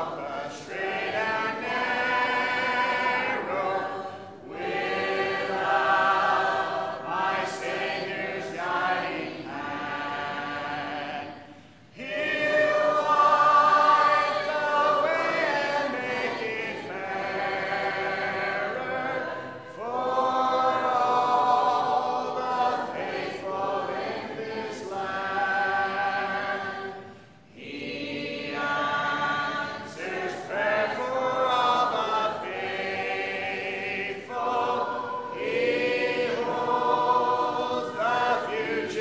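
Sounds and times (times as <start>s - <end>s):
congregation singing a hymn: 0.0s - 39.0s.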